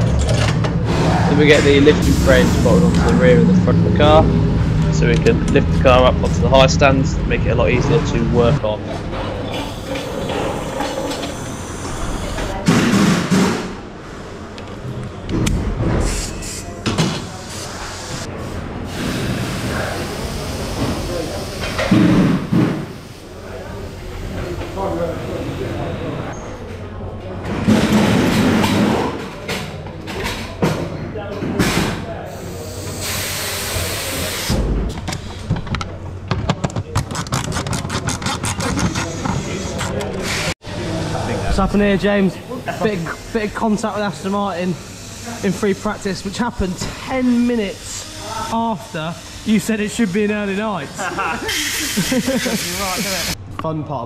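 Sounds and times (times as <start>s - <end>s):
indistinct voices: 0.0s - 13.2s.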